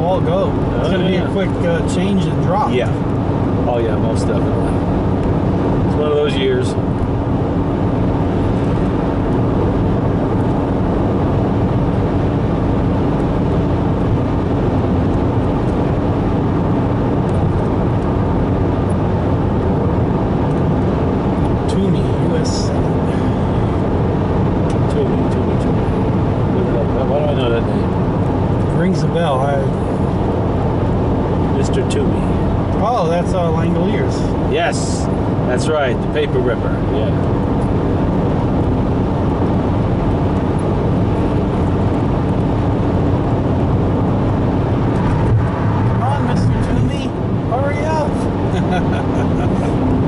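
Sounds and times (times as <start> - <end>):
car road and engine noise: 0.0 - 50.0.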